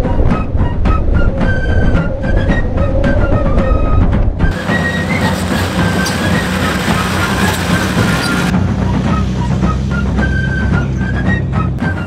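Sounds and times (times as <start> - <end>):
background music: 0.0 - 12.0
vehicle driving on gravel road: 4.5 - 12.0.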